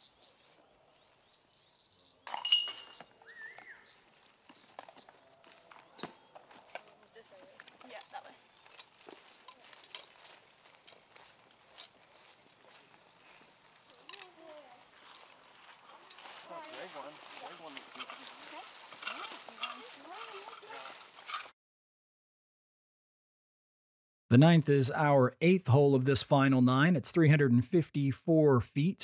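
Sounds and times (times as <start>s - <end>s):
soft footsteps: 4.0s - 21.5s.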